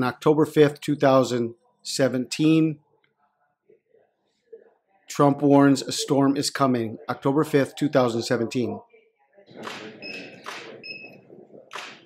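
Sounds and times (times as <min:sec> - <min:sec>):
cameras clicking in bursts: 0:11.7 - 0:12.0.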